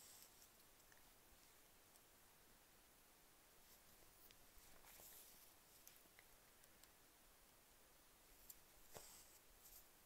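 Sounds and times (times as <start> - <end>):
rustle of fabric in embroidery hoop: 3.6 - 6.2, 8.3 - 10.0.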